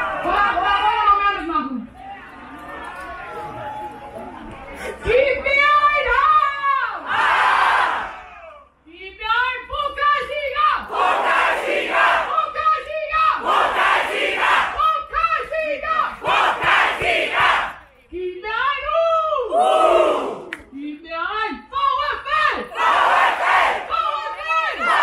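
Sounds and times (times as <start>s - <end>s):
crowd shouting back: 22.7s - 25.0s.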